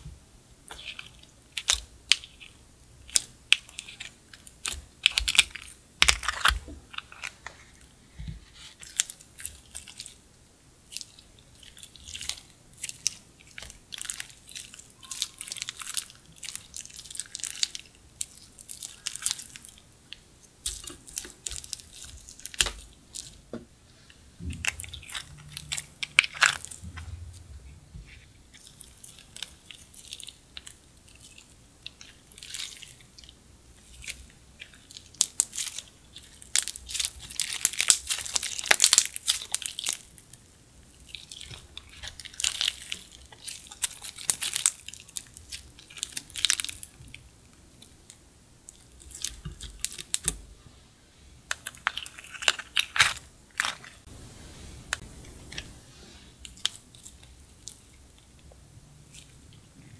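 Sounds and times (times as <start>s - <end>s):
hands squishing slime: 0.7s - 10.2s, 10.9s - 40.4s, 41.0s - 48.0s.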